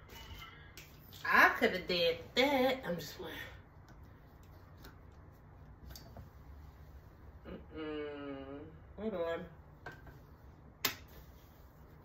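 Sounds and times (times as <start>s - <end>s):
person humming: 7.4s - 8.8s.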